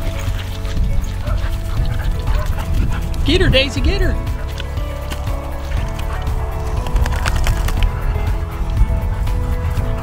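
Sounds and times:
heavy bass: 0.0s - 10.0s
music with sustained chords: 0.0s - 10.0s.

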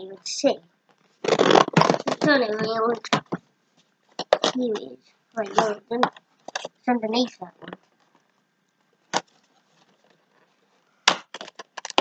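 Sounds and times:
cardboard tearing with crackles: 1.2s - 2.4s, 11.1s - 12.0s
sharp cardboard crack: 1.2s - 2.4s, 9.1s - 9.3s, 11.0s - 12.0s.

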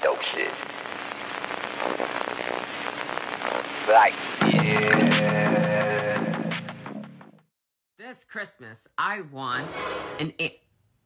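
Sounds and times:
dense continuous crackling: 0.0s - 5.5s.

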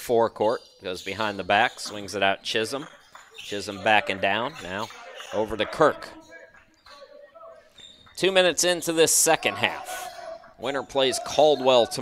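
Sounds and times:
voices in a gym: 0.0s - 12.0s.

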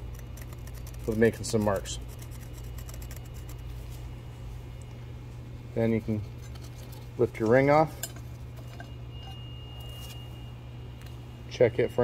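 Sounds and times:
scratching on metal: 0.0s - 3.8s, 6.0s - 8.9s
steady low hum: 0.0s - 12.0s.

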